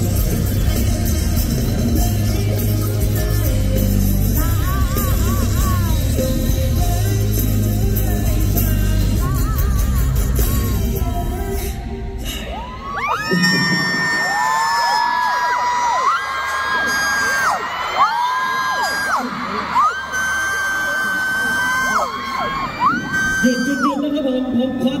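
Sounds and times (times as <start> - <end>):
live pop music: 0.0 - 25.0
crowd cheering: 12.5 - 25.0.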